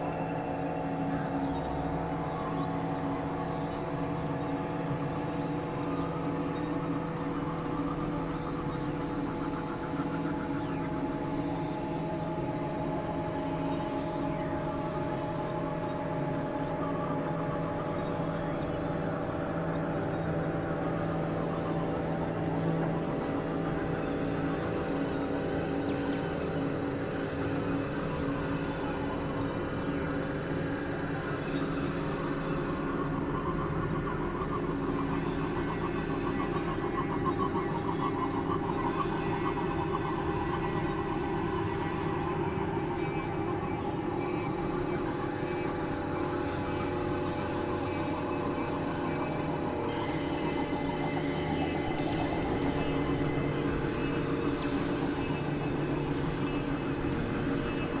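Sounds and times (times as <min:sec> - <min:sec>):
experimental drone music: 0:00.0 - 0:58.0.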